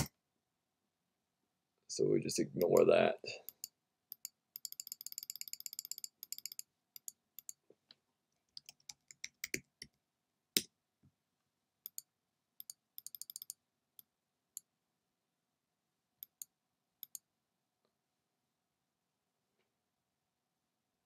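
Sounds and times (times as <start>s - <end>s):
mouse clicks: 11.8s - 14.7s, 16.2s - 17.3s.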